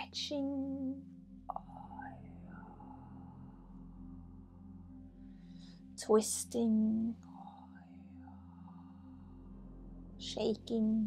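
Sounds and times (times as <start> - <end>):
woman whispering: 0.0 - 3.2, 6.0 - 8.1, 10.2 - 11.0
low steady hum: 0.0 - 11.0.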